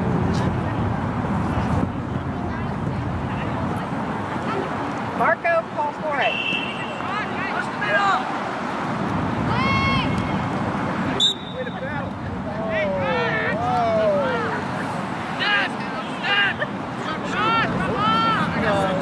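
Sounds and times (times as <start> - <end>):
outdoor background noise: 0.0 - 19.0
people shouting and calling: 9.4 - 10.4, 11.2 - 19.0.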